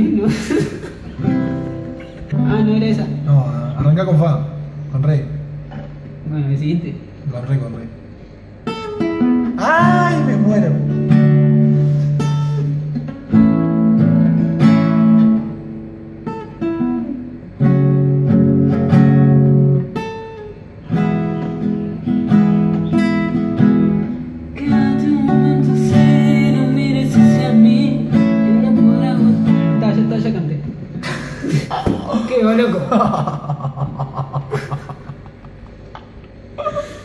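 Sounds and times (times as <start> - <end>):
acoustic guitar strumming chords: 1.0 - 6.2, 8.6 - 31.0.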